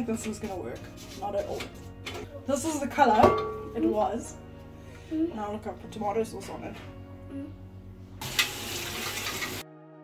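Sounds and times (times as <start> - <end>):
soft background music: 0.0 - 10.0
tap water running into a sink: 8.2 - 9.6.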